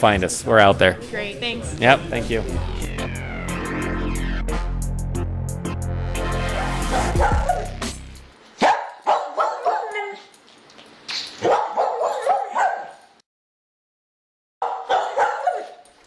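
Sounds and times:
dog barking: 0:06.6 - 0:07.8, 0:08.6 - 0:10.3, 0:11.4 - 0:13.1, 0:14.6 - 0:15.8.

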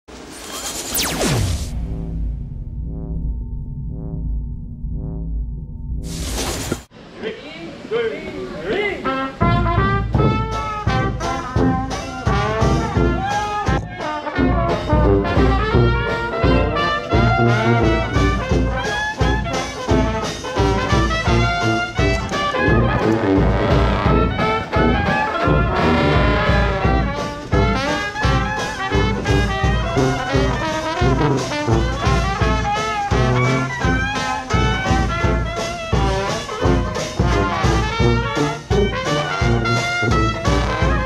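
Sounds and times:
traditional jazz band playing: 0:09.0 - 0:41.0.

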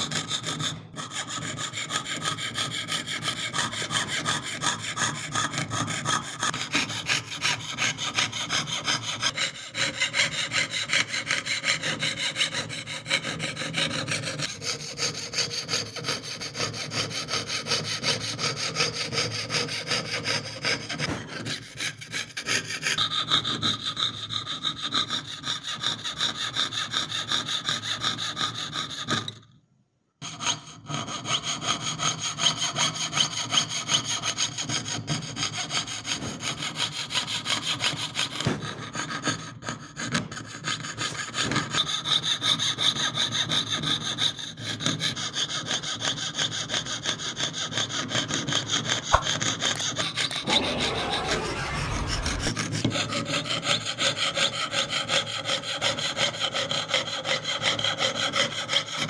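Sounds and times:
saw blade rasping through metal: 0:00.0 - 0:29.4, 0:54.0 - 0:59.0.

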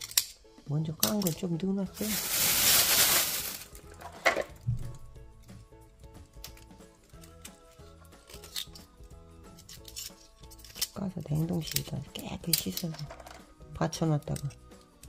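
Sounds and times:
knife clicking against clam shells: 0:00.0 - 0:00.4
soft background music: 0:00.0 - 0:15.0.

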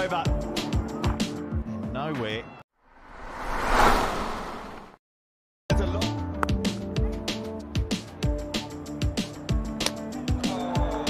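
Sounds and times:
whoosh transition: 0:02.9 - 0:05.0.

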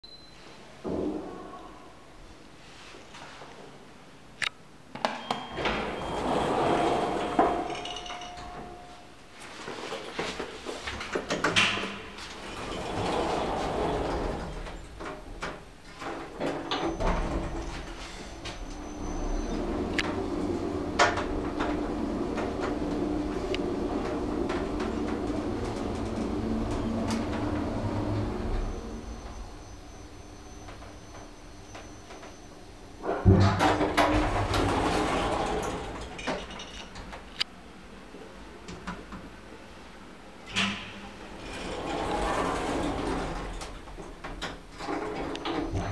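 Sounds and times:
brief lift tone: 0:00.0 - 0:00.6, 0:05.1 - 0:09.2, 0:16.7 - 0:36.0
lift doors sliding: 0:05.2 - 0:37.5, 0:40.4 - 0:45.9
lift car humming: 0:05.6 - 0:09.1, 0:12.3 - 0:36.3, 0:41.1 - 0:45.9.

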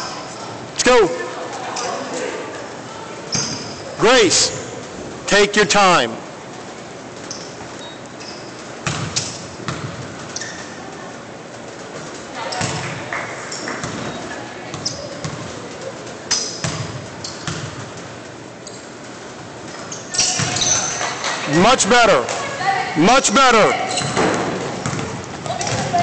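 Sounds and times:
faint background chatter: 0:00.0 - 0:05.3, 0:10.3 - 0:17.9, 0:19.8 - 0:26.0
basketball bouncing on hardwood: 0:08.8 - 0:10.3, 0:16.6 - 0:17.9, 0:24.0 - 0:26.0.

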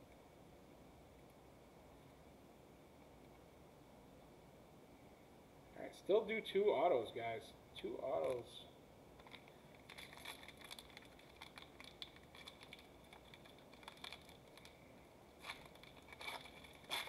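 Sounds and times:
foil wrapper crinkling and tearing: 0:09.2 - 0:14.8, 0:15.4 - 0:17.0.

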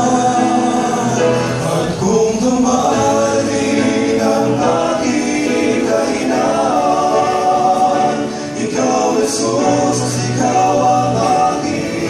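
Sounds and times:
male vocal quartet singing gospel: 0:00.0 - 0:12.0.

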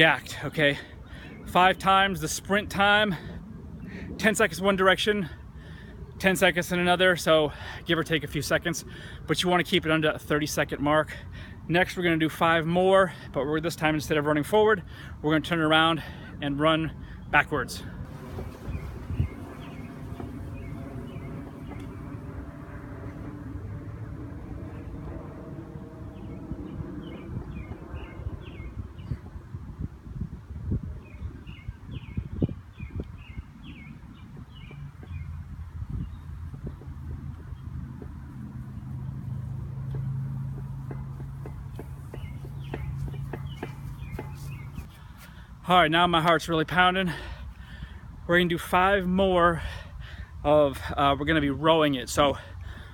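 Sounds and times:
birds chirping: 0:15.4 - 0:29.3, 0:31.0 - 0:52.9
low steady rumble: 0:17.8 - 0:28.9.

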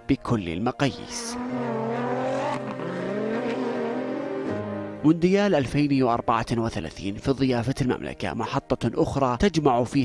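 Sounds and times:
rally car engine running hard: 0:01.0 - 0:04.5.

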